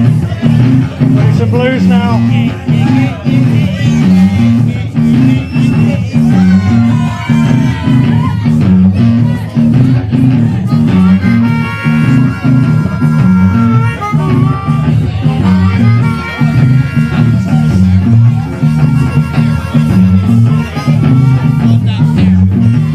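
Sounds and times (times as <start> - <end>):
bass and electric guitar riff: 0.0 - 22.9
harmonica playing: 10.7 - 22.9.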